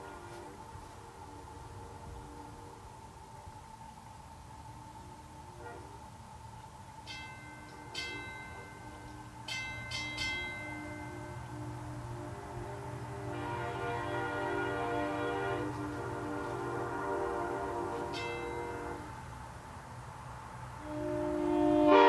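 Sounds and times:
locomotive air horn blasts: 0.0 - 0.8, 5.6 - 6.0, 10.7 - 19.3, 20.8 - 22.0.

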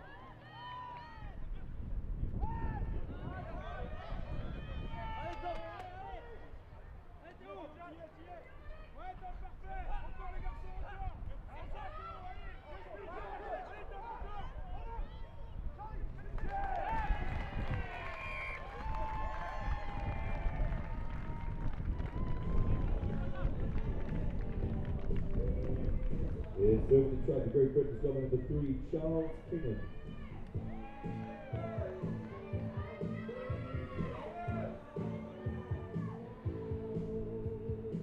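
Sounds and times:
crowd cheering: 0.0 - 1.6, 2.4 - 37.1
players and spectators shouting: 2.4 - 6.5, 7.3 - 15.6, 26.8 - 37.1.

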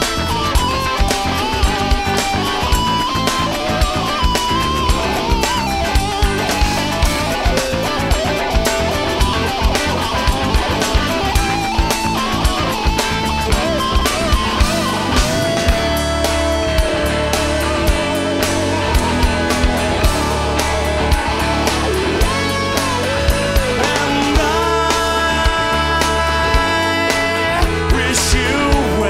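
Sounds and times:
bass guitar: 0.0 - 29.0
drums: 0.0 - 29.0
electric lead guitar: 0.0 - 29.0.

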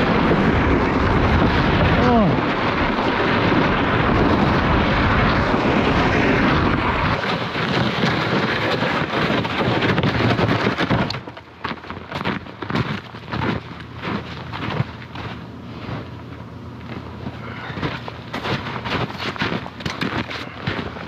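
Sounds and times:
wind buffeting microphone: 0.0 - 21.0
footsteps crunching in snow: 7.6 - 21.0.

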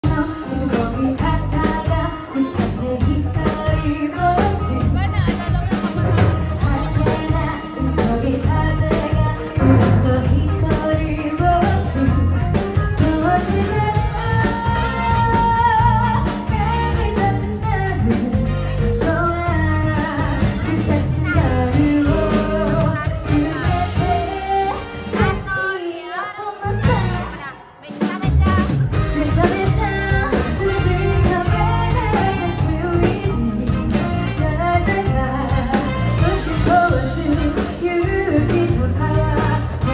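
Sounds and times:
steady drum beat: 0.0 - 25.6, 26.8 - 39.9
saxophone: 0.0 - 39.9
woman singing: 0.0 - 39.9
drum kit hits: 4.4 - 11.0.

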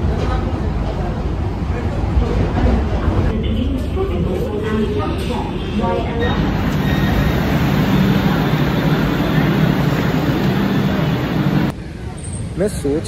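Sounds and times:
train carriage running noise: 0.0 - 12.3.

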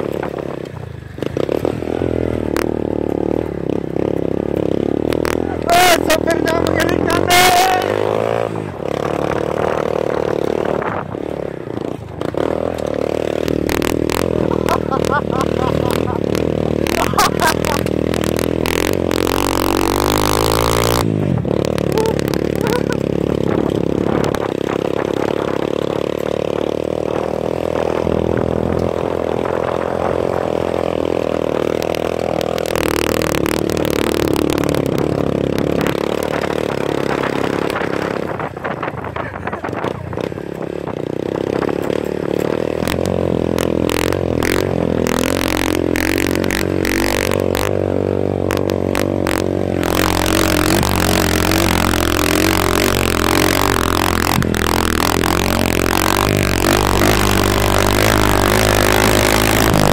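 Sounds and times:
motorcycle engine under load: 0.0 - 59.9.

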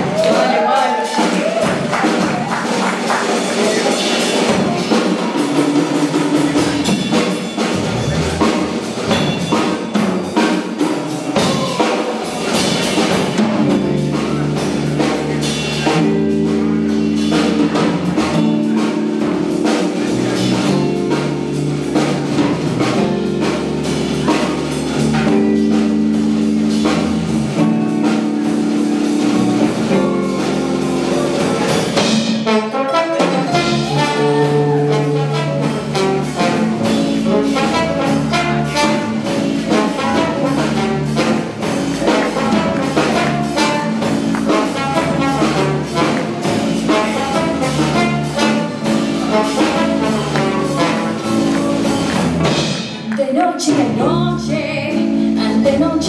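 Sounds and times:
drum kit and percussion: 0.0 - 56.0
electric bass: 1.4 - 32.4, 33.5 - 56.0
trombone: 12.5 - 52.5.

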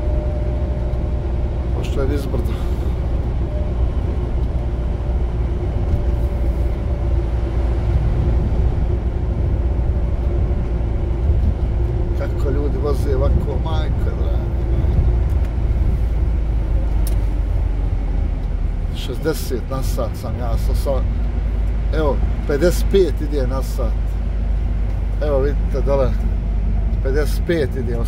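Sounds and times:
drivetrain hum: 0.0 - 28.0
truck engine and tyres droning: 0.0 - 28.0.

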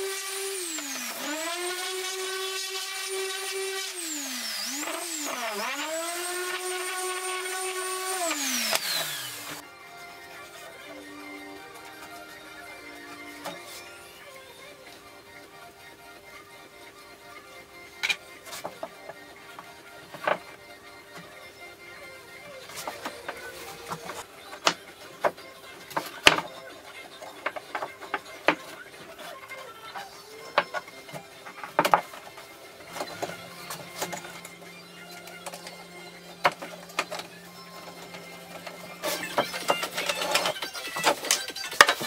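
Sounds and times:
orbital sander running: 0.0 - 9.6
quiet background music: 0.0 - 42.0.

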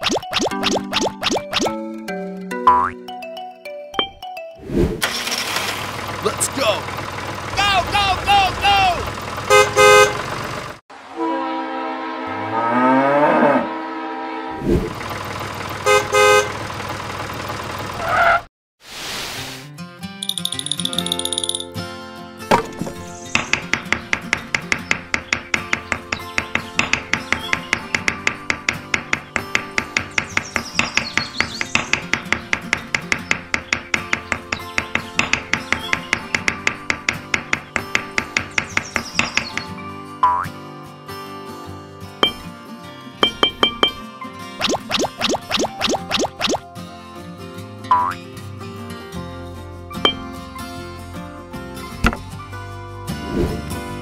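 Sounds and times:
background music with quick beat: 44.6 - 46.6.

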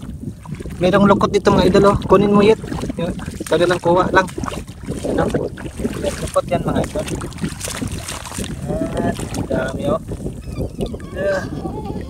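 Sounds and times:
water swishing: 0.0 - 12.0
wind buffeting microphone: 0.0 - 12.0.

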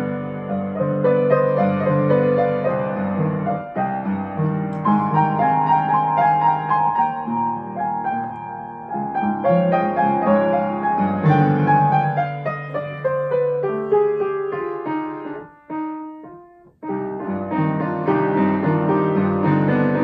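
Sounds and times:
solo piano chords and melody: 0.0 - 20.0.

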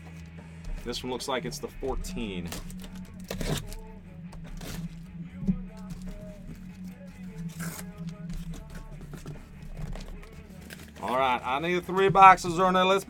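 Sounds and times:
cardboard flaps scraping: 0.0 - 13.0
faint background music: 0.0 - 13.0
packing tape ripping: 1.9 - 11.4.

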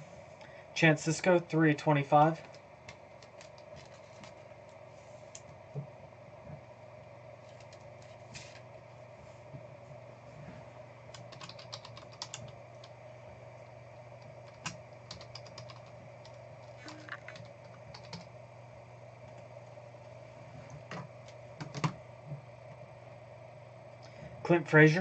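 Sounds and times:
computer keyboard typing: 2.9 - 4.4, 7.4 - 8.2, 11.1 - 12.9, 14.2 - 18.3, 20.9 - 22.0.

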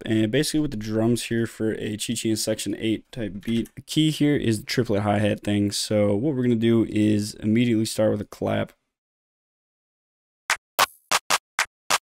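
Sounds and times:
sharp hand claps: 11.1 - 12.0.

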